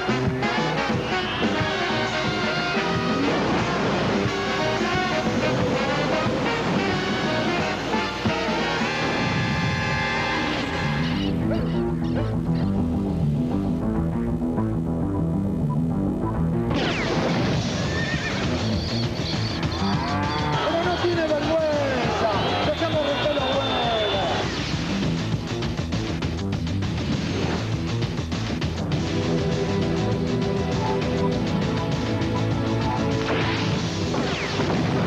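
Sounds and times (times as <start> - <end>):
music with steady beat: 0.0 - 16.7, 18.4 - 34.1
horse whinnying: 17.8 - 18.7.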